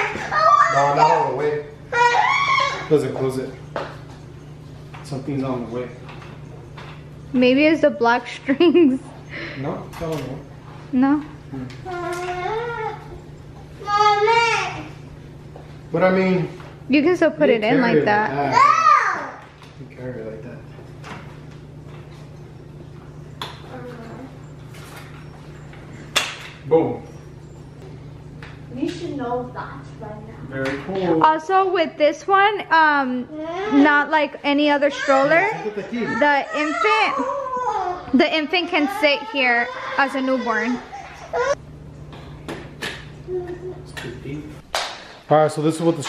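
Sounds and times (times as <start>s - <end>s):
low steady hum: 0.0s - 46.0s.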